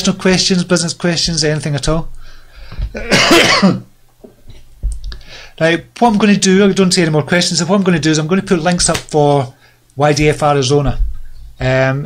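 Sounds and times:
man coughing: 0:02.9 - 0:03.9.

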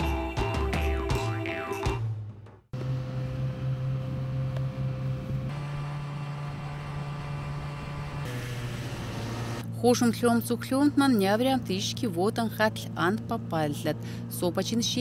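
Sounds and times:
snowmobile engine droning: 0:02.8 - 0:15.0
woman speaking: 0:09.8 - 0:15.0.

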